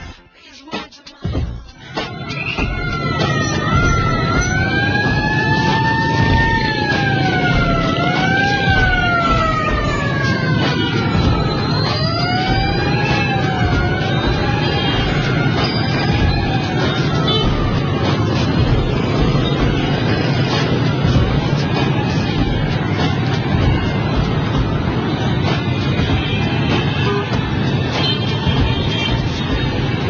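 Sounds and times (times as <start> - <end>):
wailing siren: 1.8 - 30.0
motorbike traffic rumble: 2.1 - 30.0.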